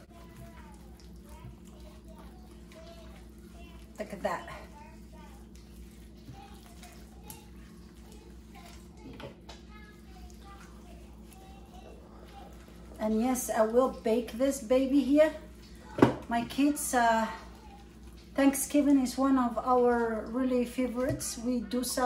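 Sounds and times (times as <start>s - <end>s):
faint voices with child: 0.0s - 13.4s, 17.0s - 18.4s
steady low hum: 0.0s - 22.0s.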